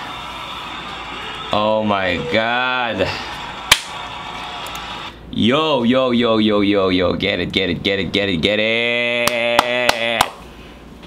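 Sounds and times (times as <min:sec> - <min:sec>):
video playback sound: 0:00.0 - 0:10.4
sharp crack: 0:03.7 - 0:04.0.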